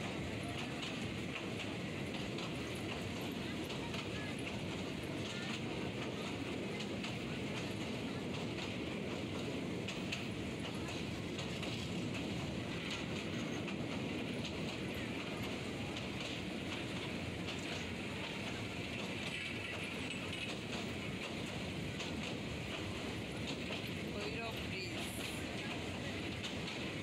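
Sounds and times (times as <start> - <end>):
train rumbling over a bridge: 0.0 - 27.0.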